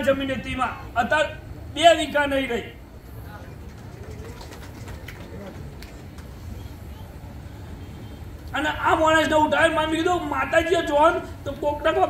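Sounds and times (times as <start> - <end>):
low steady hum: 0.0 - 12.0
faint murmuring voices: 2.8 - 8.6.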